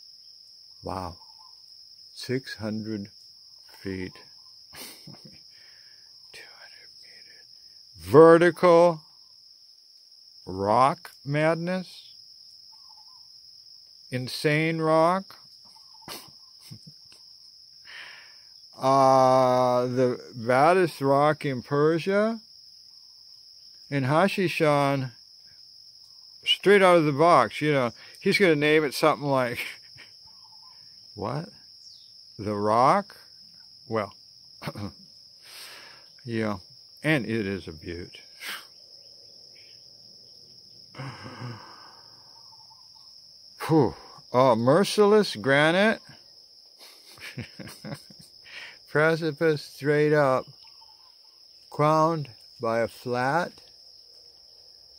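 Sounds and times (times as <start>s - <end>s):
crickets trilling: 0.0s - 54.9s
man breathing: 4.8s - 6.1s, 17.8s - 18.5s, 35.4s - 36.2s, 40.9s - 42.3s, 48.4s - 48.9s.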